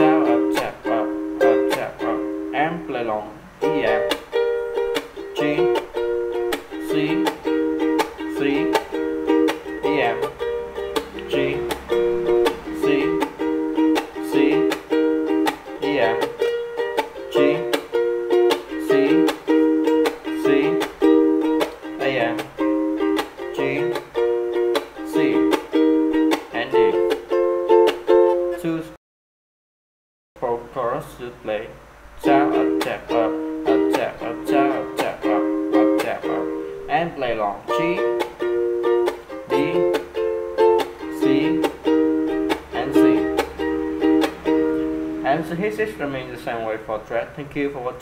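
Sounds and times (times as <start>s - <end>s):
ukulele strumming with percussive taps: 0.0s - 2.6s, 3.5s - 28.7s, 32.2s - 47.9s.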